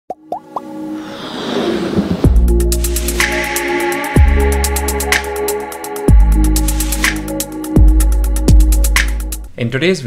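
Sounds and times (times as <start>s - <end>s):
rising pops: 0.2s - 3.4s
whoosh: 0.8s - 3.4s
held music chord: 2.3s - 9.4s.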